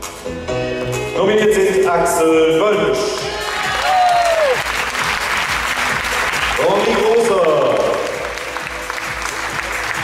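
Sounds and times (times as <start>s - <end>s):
music playing: 0.0s - 10.0s
audience applauding: 3.2s - 10.0s.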